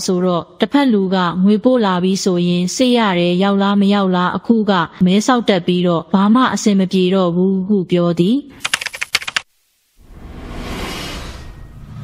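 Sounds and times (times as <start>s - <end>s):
rapid sharp clicks: 8.6s - 9.5s.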